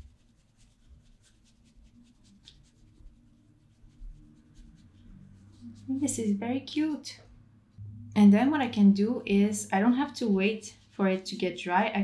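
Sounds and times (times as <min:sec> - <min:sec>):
paintbrush brushing on paper: 0:00.0 - 0:06.7, 0:09.8 - 0:12.0.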